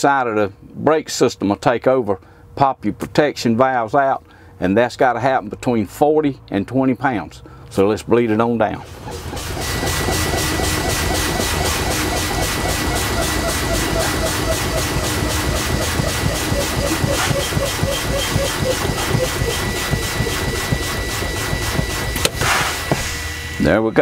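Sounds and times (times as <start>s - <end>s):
diesel engine idling: 8.7s - 22.3s
air brakes releasing: 8.8s - 23.4s
warning buzzer high tone: 8.9s - 24.0s.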